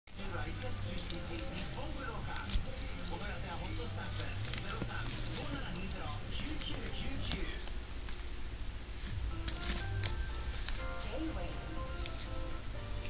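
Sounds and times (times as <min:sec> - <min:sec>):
small bell jingling: 0:00.1 - 0:13.0.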